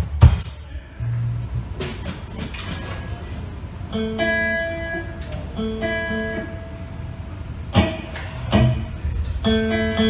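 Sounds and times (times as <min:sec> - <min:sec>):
drum hits: 0:00.0 - 0:00.6
amplifier hum: 0:02.9 - 0:10.0.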